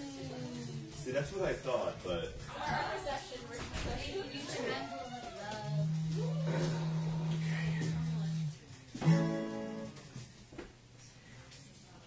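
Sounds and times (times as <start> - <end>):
low guitar tone: 5.0 - 10.1
plucked guitar note: 5.6 - 10.0.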